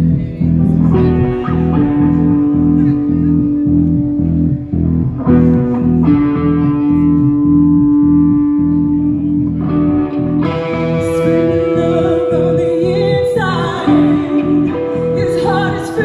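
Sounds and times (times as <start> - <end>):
heavy metal band playing: 0.0 - 16.0.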